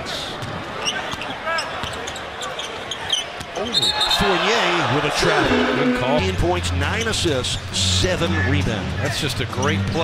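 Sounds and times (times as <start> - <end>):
murmur of crowd voices: 0.0 - 9.6
sneaker squeak: 0.8 - 4.1.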